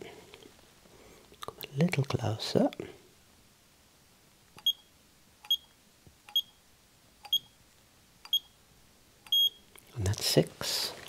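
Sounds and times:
short high beeps: 0:09.3 - 0:09.6.

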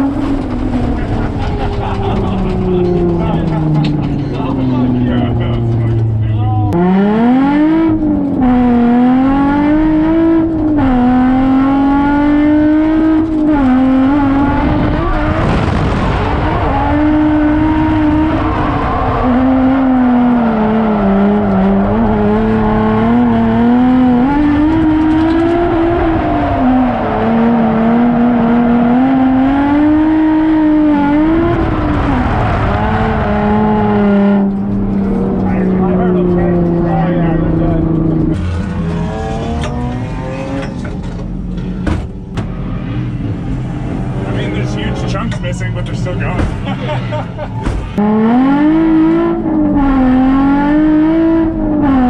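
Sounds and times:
car engine revving: 0:00.0 - 0:52.0.

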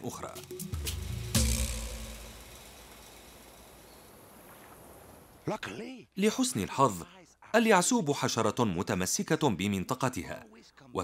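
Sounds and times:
low outdoor hiss: 0:00.0 - 0:11.0.

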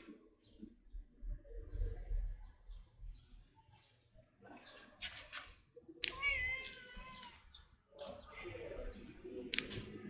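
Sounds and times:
cat meowing: 0:06.1 - 0:07.4.

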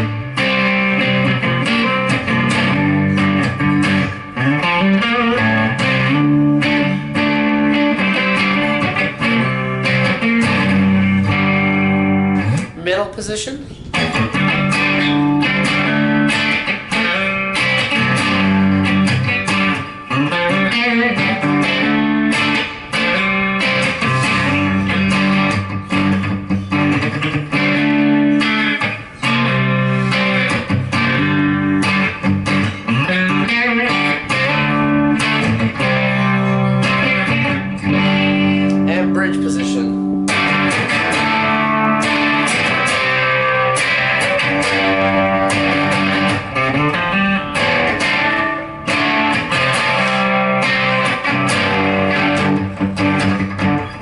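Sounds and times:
crunchy electric guitar: 0:00.0 - 0:12.8, 0:13.4 - 0:54.0.

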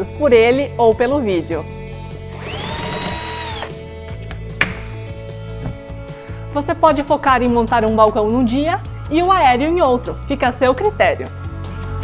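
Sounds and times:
cordless drill motor whine: 0:02.3 - 0:03.8.

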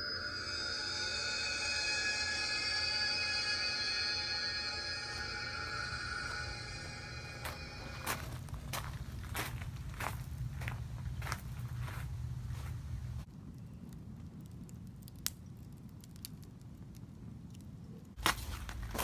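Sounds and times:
soft sustained music tones: 0:00.0 - 0:12.0
footsteps crunching on gravel: 0:07.4 - 0:12.8.

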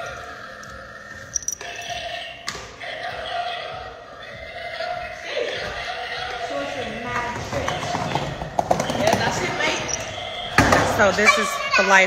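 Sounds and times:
voices: 0:00.0 - 0:12.0
skateboard clattering on tiles: 0:07.1 - 0:09.7.

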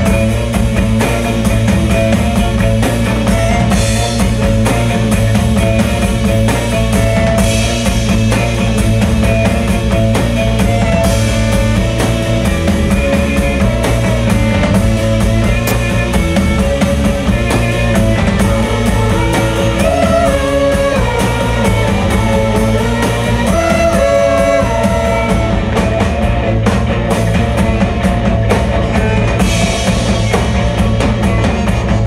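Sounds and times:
drum kit beat: 0:00.0 - 0:32.0
rock band playing: 0:00.0 - 0:32.0.

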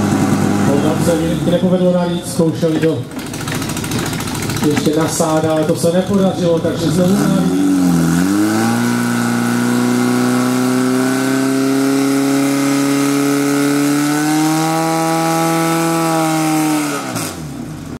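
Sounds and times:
fire pump engine droning: 0:00.0 - 0:16.6.

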